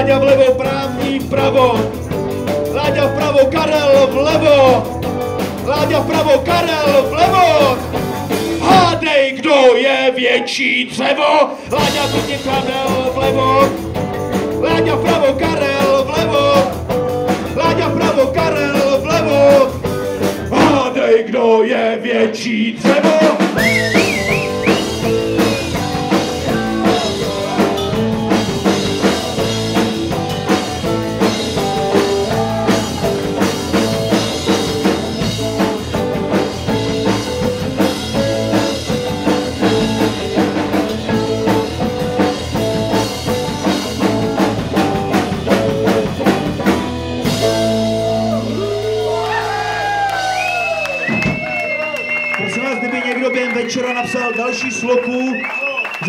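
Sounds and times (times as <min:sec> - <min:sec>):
drum kit beat: 0:00.0 - 0:09.1, 0:11.7 - 0:21.0, 0:22.8 - 0:54.5
rock band playing: 0:00.0 - 0:09.2, 0:11.6 - 0:21.0, 0:22.8 - 0:56.0.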